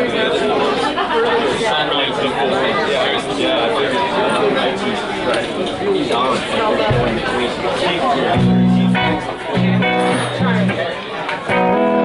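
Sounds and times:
hubbub of overlapping voices: 0.0s - 12.0s.

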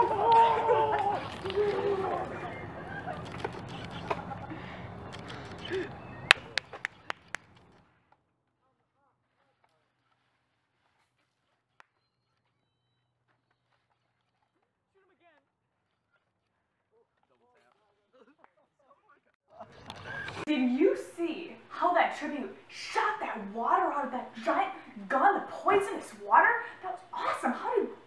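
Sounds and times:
people running through undergrowth: 0.0s - 7.7s
voices: 0.0s - 7.7s, 17.6s - 28.0s
sharp clicks: 3.1s - 7.8s.

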